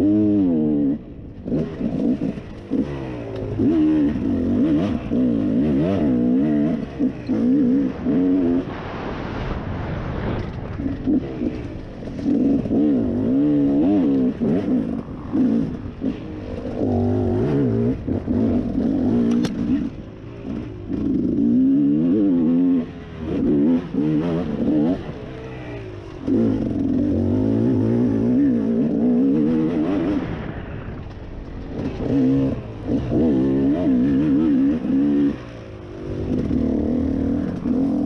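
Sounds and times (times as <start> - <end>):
dirt bike engine revving: 0.0 - 8.8, 10.7 - 38.0.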